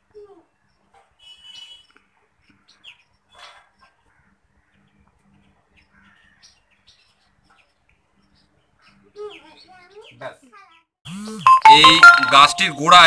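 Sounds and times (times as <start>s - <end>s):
faint birds chirping: 0.1s - 10.9s.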